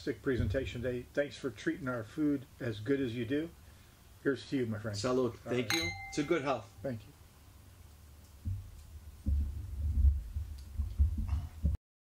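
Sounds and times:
microphone handling thumps: 8.4 - 11.8.

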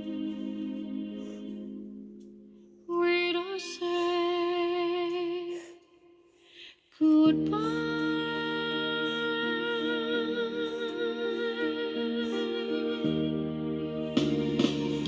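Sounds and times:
woman singing a slow ballad: 2.9 - 5.8, 7.0 - 13.4
instrumental backing: 10.4 - 15.0.

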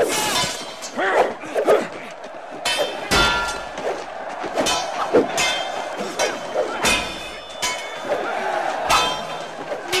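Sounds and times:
sword clanging: 0.0 - 1.0, 4.6 - 8.1, 8.9 - 10.0
fighters grunting and shouting: 0.0 - 10.0.

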